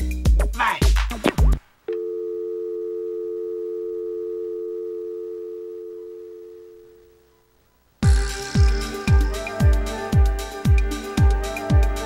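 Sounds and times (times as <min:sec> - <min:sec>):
steady electronic dial tone: 0:01.9 - 0:07.3
electronic music with strong beat: 0:08.0 - 0:12.0.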